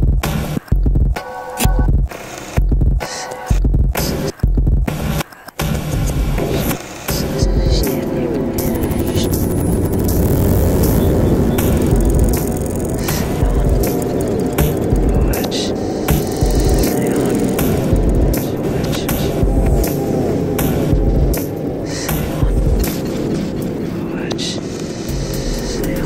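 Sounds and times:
electronic music: 6.0 - 26.0.

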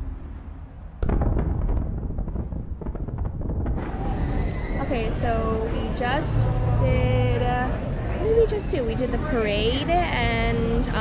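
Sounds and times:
steady low rumble: 0.0 - 11.0
woman speaking: 4.8 - 7.8, 8.4 - 11.0.

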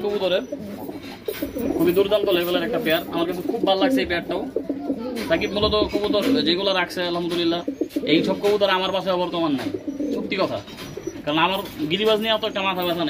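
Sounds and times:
pigeons cooing: 0.0 - 13.0.

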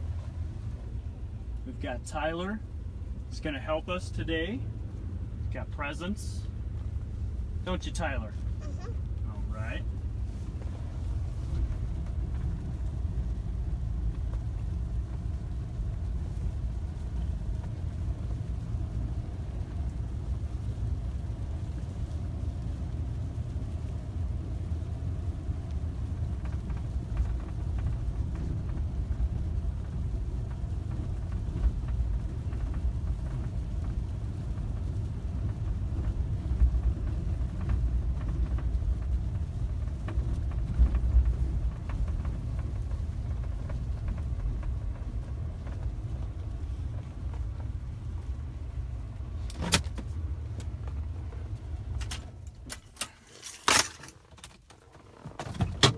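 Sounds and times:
vehicle rumble from inside cabin: 0.0 - 55.9.

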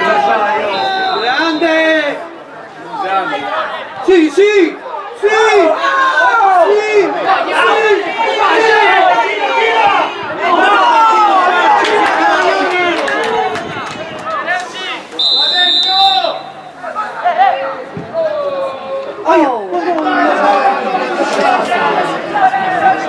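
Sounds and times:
crowd shouting and calling: 0.0 - 23.0
shrill whistle: 0.7 - 1.8, 15.2 - 16.6.

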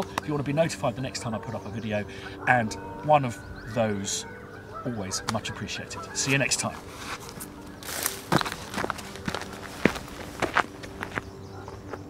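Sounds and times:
footsteps on stony ground: 6.2 - 12.0.

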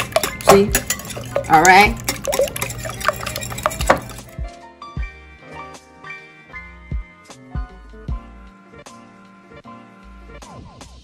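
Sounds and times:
whisk beating eggs in glass bowl: 0.0 - 4.4
soft background music: 0.0 - 10.8.

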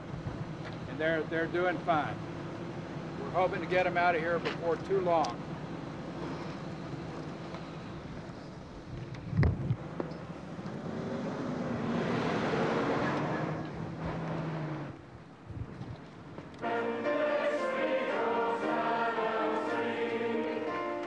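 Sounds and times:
street traffic: 0.0 - 21.0
wind on microphone: 8.8 - 9.8
vehicle passing: 9.8 - 15.0, 16.6 - 21.0.

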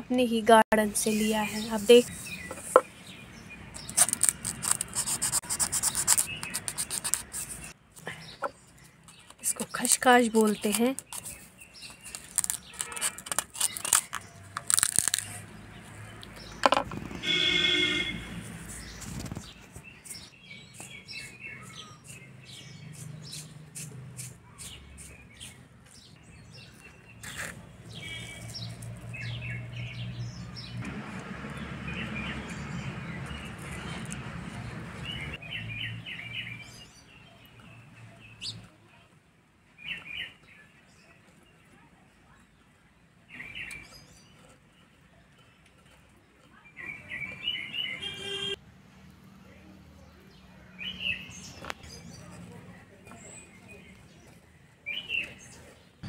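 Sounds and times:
small birds chirping: 0.1 - 56.0
dry seed pods crackling: 3.8 - 8.1, 8.8 - 17.4.

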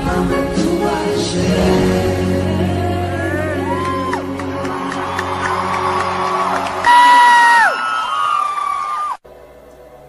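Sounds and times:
band playing worship song: 0.0 - 7.2.

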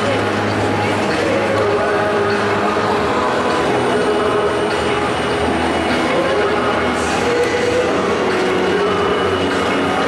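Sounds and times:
stadium crowd din: 0.0 - 10.0.

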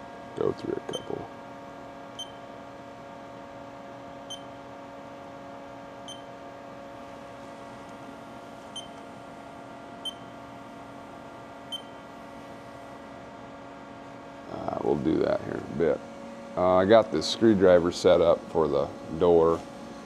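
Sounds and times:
steady electrical hum: 0.0 - 20.0
short high keypad beeps: 2.2 - 2.4, 4.3 - 4.5, 8.8 - 9.0, 10.0 - 10.3, 11.7 - 12.0.

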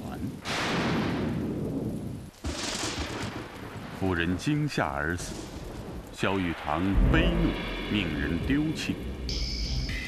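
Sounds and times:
thunder cracks: 0.4 - 10.0.

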